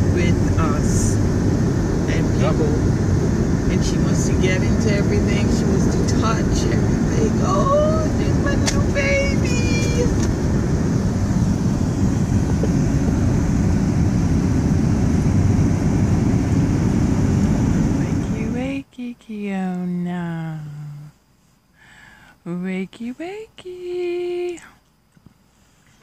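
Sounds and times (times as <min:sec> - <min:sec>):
car road and engine noise: 0:00.0 - 0:19.1.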